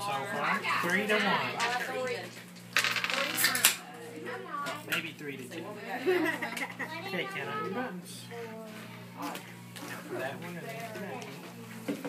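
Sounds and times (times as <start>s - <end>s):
dice clattering on a tabletop: 2.7s - 3.8s.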